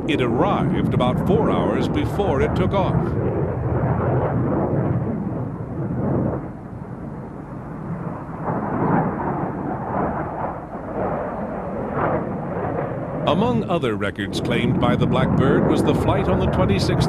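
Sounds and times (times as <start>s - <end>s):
jet rushing rumble: 0.0s - 17.0s.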